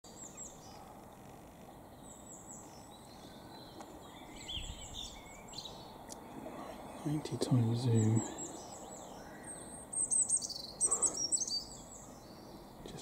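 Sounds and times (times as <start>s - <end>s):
outdoor background noise: 0.0s - 13.0s
songbird chirping: 0.0s - 13.0s.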